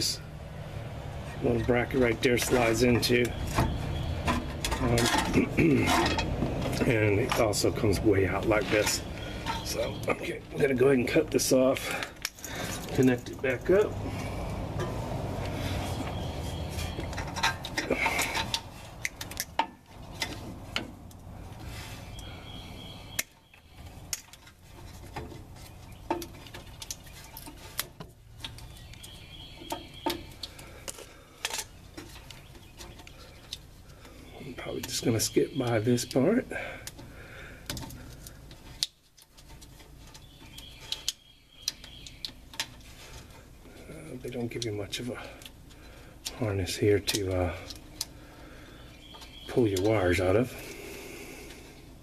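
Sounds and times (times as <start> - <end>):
hands clicking and tapping wiring: 1.3 - 50.6.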